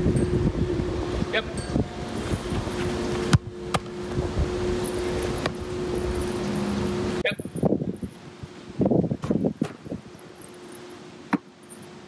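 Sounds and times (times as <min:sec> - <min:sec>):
wind on microphone: 0:00.0 - 0:10.2
steady low hum: 0:00.0 - 0:12.0.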